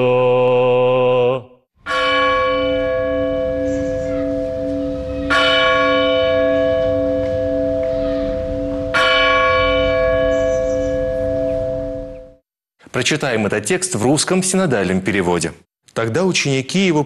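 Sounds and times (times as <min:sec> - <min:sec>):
church bell tolling: 0:01.8 - 0:12.4.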